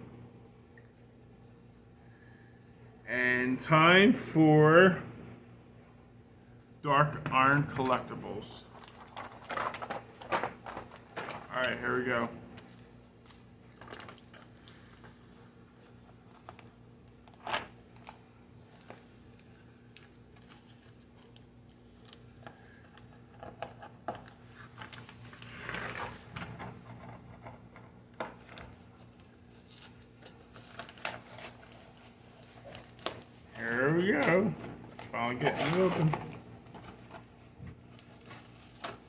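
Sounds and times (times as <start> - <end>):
packaging rustling: 8.6 - 26.4, 28.3 - 39.0.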